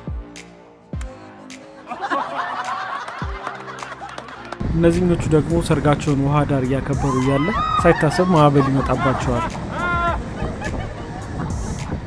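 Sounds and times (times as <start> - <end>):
background music: 0.0 - 12.0
people laughing: 1.8 - 4.6, 7.7 - 12.0
low drum beat: 9.2 - 12.0.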